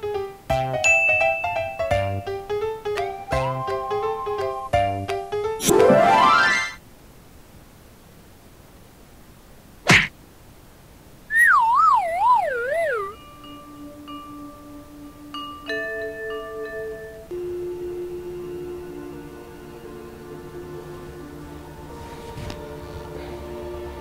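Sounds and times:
sharp whack: 9.9 - 10.1
soft held music notes: 11.2 - 24.0
wobbling whistle sliding down: 11.3 - 13.3.

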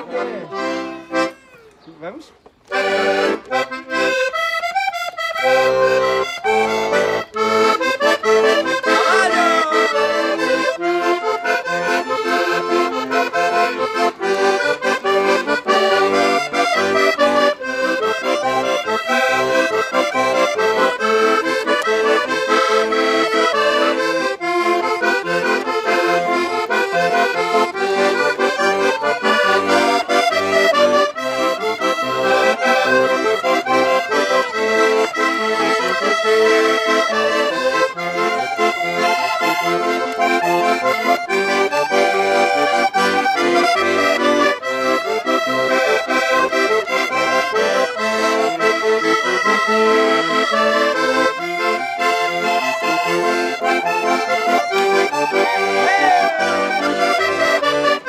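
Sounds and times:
accordions playing dance tune: 0.0 - 58.0.

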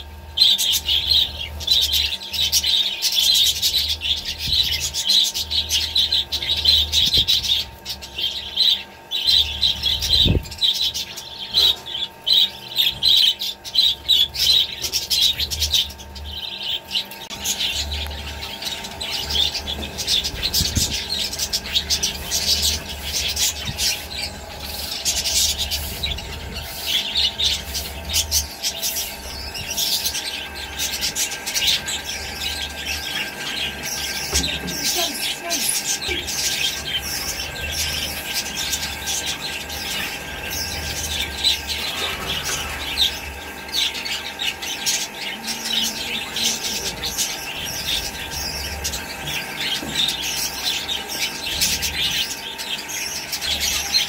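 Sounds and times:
budgerigars chattering: 0.0 - 54.0.

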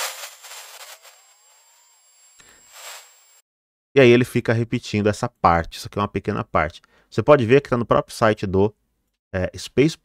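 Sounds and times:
faint rising whine: 0.5 - 3.4
hiss: 2.4 - 3.4.

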